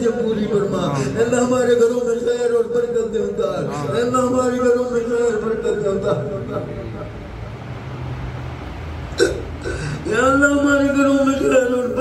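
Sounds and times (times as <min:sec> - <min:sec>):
steady low hum: 0:00.0 - 0:12.0
man making throaty vocal sound: 0:09.1 - 0:10.1.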